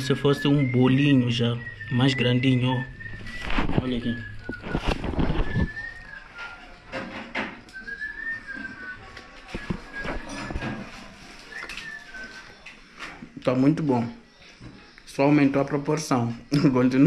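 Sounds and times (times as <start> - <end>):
person whistling a tune: 0.0 - 6.8, 7.7 - 10.6, 11.5 - 12.6
knocks and handling noises: 3.3 - 13.3.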